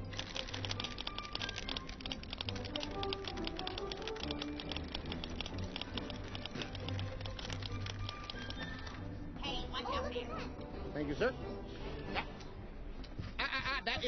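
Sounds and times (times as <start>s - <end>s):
rapid ticket punch clicks: 0.0s - 9.0s
orchestral background music: 0.0s - 13.9s.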